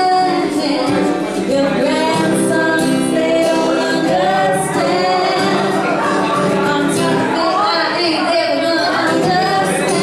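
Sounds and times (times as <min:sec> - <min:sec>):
strummed acoustic guitar: 0:00.0 - 0:10.0
woman singing: 0:00.0 - 0:10.0.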